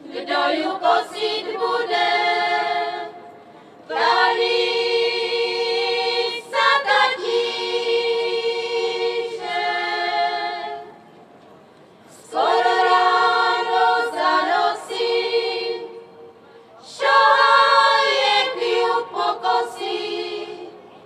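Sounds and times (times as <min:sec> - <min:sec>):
women's choir singing unaccompanied: 0:00.0 - 0:11.1, 0:12.1 - 0:21.0.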